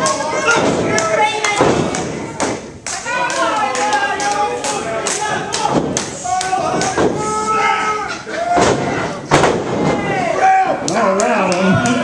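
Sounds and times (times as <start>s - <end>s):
people's voices: 0.0s - 12.0s
thuds of wrestlers grappling: 0.4s - 2.7s, 5.6s - 7.5s, 8.5s - 10.3s.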